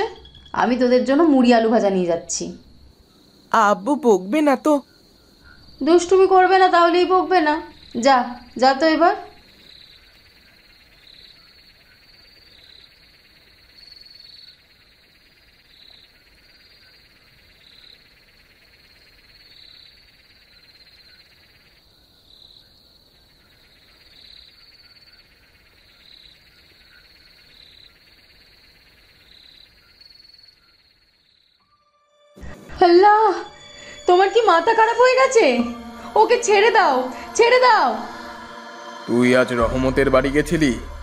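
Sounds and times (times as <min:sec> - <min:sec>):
loud chirp: 0:00.0 - 0:01.2
crickets trilling: 0:00.0 - 0:31.7, 0:32.6 - 0:41.0.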